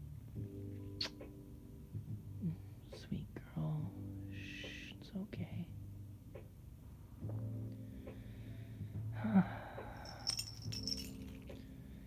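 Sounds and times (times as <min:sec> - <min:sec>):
woman humming softly: 0:02.4 - 0:03.1.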